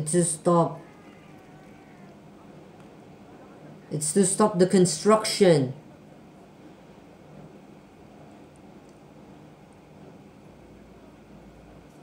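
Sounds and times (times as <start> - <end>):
faint tv dialogue: 0.0 - 5.9
steady low hum: 0.0 - 12.0.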